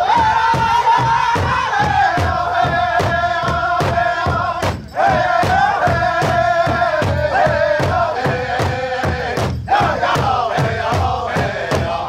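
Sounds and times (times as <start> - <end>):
group singing in unison: 0.0 - 12.0
large drum beating: 0.0 - 12.0.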